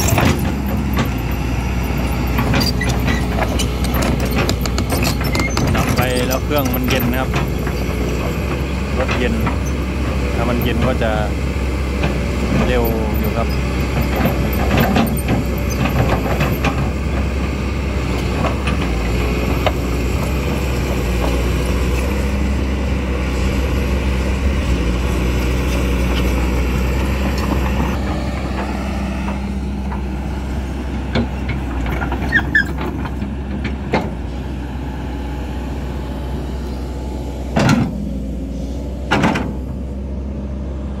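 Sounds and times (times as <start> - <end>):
excavator diesel engine running: 0.0 - 41.0.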